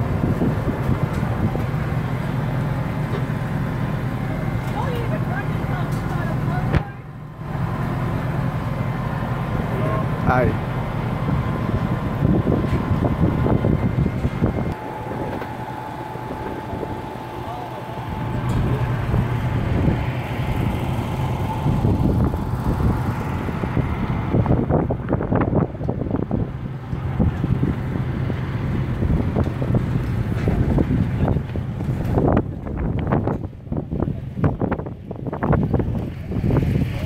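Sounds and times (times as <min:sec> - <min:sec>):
wind on microphone: 0:00.0 - 0:01.9, 0:09.9 - 0:17.3, 0:18.0 - 0:37.0
low engine hum: 0:00.0 - 0:37.0.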